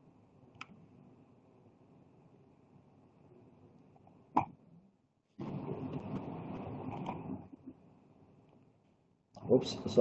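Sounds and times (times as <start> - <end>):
noisy microphone sound: 0.0 - 10.0.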